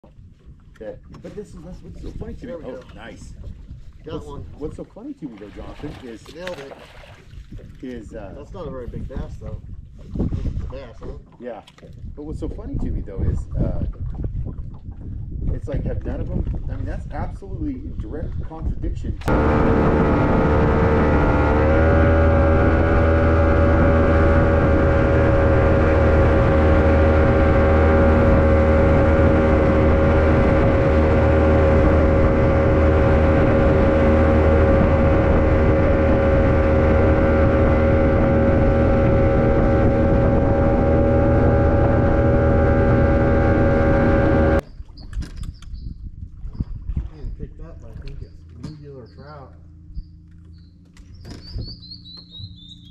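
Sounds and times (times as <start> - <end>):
outboard motor running: 19.2 - 44.9, 46.2 - 52.9.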